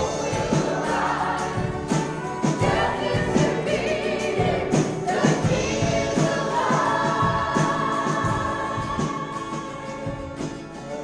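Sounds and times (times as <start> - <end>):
acoustic and electric guitars: 0.0 - 11.0
drum kit beat: 0.0 - 11.0
voices singing: 0.0 - 11.0.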